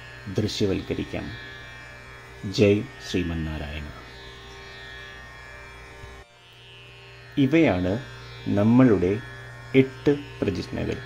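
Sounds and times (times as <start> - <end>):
instrumental drone music: 0.0 - 11.0.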